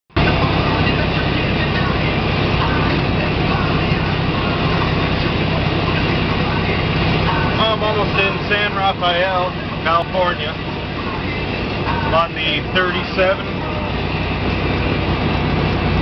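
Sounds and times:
truck diesel engine hum: 0:00.1 - 0:16.0.

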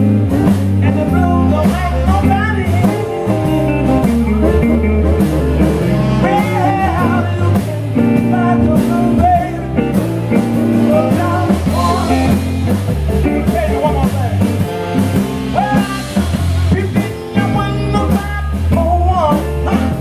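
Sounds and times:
drum kit: 0:00.0 - 0:20.0
electric bass: 0:00.0 - 0:20.0
electric guitars: 0:00.0 - 0:20.0.

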